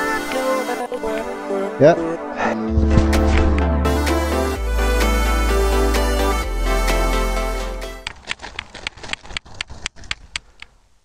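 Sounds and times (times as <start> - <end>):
roots crackling and soil knocking: 8.0 - 10.7.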